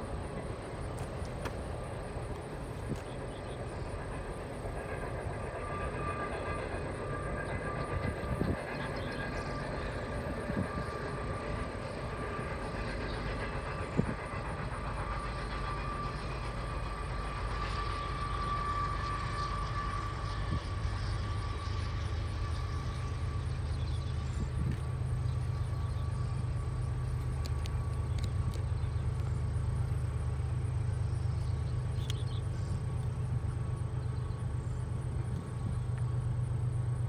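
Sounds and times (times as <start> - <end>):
steel wheels rumbling on rail: 0.0 - 37.0.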